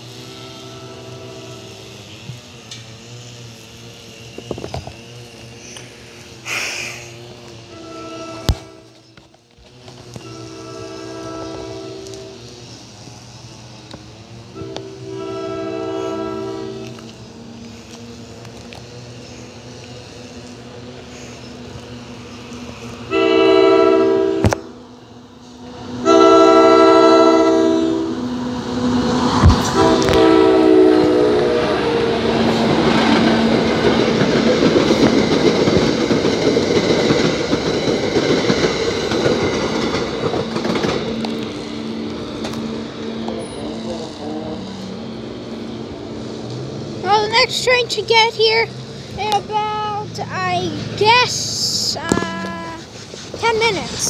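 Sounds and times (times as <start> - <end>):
train horn blasts: 0.0 - 3.4, 7.2 - 12.8, 14.4 - 17.2, 22.9 - 25.0, 25.7 - 33.0
train passing with heavy rumble: 0.0 - 54.0
wheels clattering on rails: 28.2 - 54.0.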